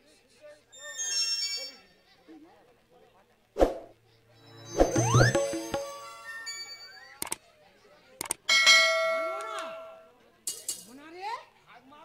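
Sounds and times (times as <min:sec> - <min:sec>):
bell ringing: 0:04.5 - 0:07.0.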